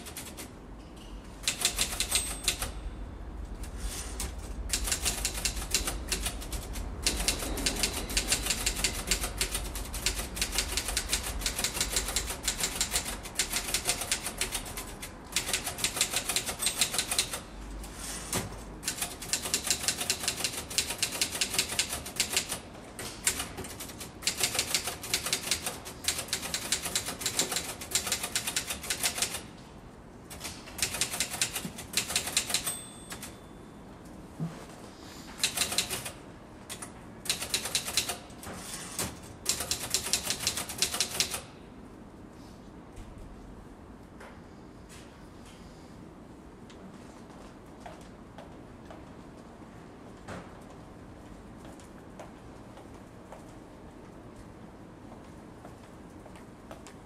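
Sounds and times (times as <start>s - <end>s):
keyboard typing: 1.4s - 2.8s, 4.2s - 17.5s, 18.8s - 22.6s, 23.2s - 29.4s, 30.3s - 33.4s, 35.4s - 38.2s, 39.4s - 41.5s.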